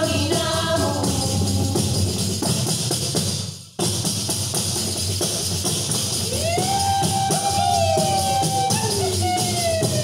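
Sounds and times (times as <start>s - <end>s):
women singing together: 0.0s - 2.1s
frame drums with jingles: 0.0s - 10.0s.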